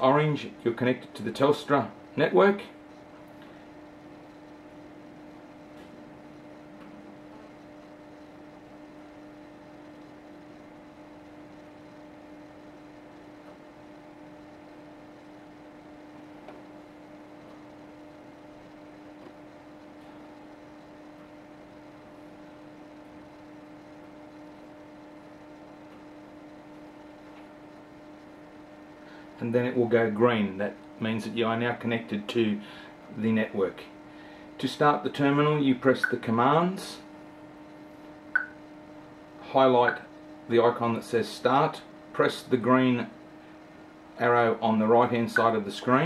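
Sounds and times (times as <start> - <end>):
electrical hum: 0.0 - 46.0.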